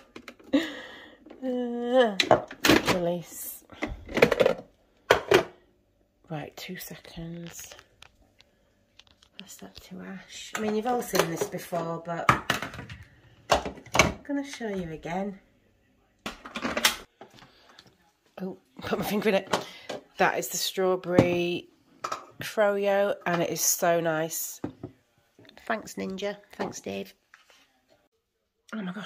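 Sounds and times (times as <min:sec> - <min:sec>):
plastic bowl rattling: 0:03.9 - 0:05.5.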